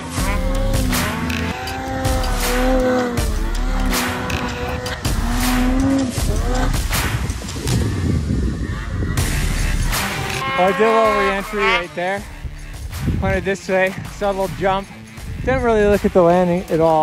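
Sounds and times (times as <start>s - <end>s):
snowmobile engine revving: 0.0s - 12.0s
background music: 0.0s - 17.0s.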